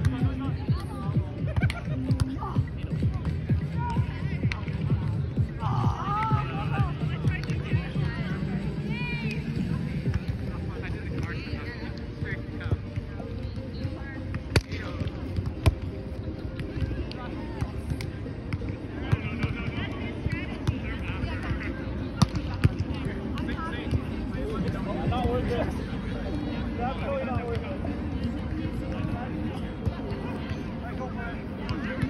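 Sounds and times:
outdoor background noise: 0:00.0 - 0:32.0.

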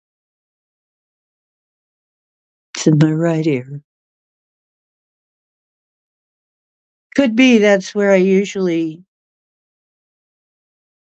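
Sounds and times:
person speaking: 0:02.8 - 0:03.8, 0:07.2 - 0:09.0.

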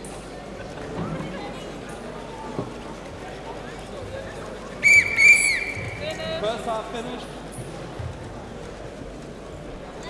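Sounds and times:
referee's whistle blasts: 0:04.8 - 0:06.0.

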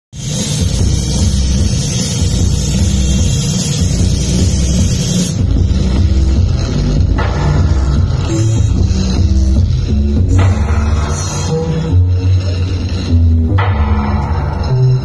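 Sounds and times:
bright hiss: 0:00.2 - 0:05.9.

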